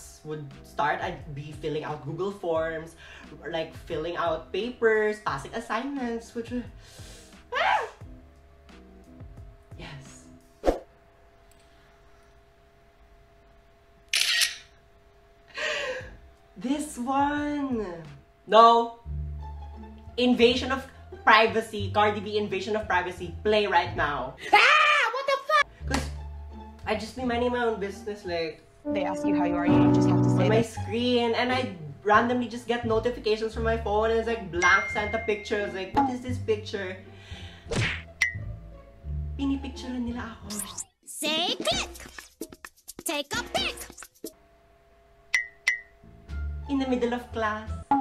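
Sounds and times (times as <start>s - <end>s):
camera shutter snap: 14.1s - 14.7s.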